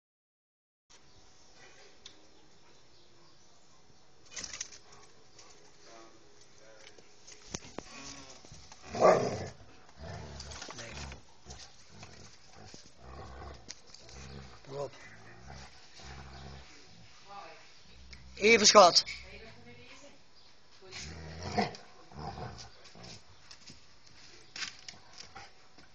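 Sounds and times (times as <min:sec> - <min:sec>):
dogs scuffling: 0:04.2 - 0:21.2, 0:21.8 - 0:25.9.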